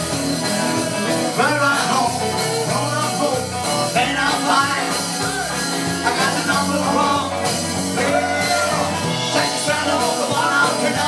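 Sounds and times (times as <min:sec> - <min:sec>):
electric guitars: 0:00.0 - 0:11.0
rock band playing: 0:00.0 - 0:11.0
man singing: 0:00.4 - 0:11.0.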